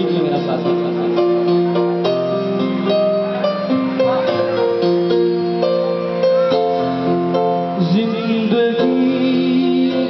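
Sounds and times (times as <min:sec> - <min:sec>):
electronic keyboard melody over chords: 0:00.0 - 0:10.0.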